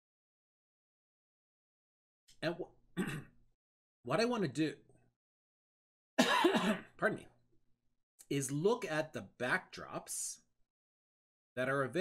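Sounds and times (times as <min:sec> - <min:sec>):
man coughing: 0:03.0 - 0:03.3, 0:06.2 - 0:06.9.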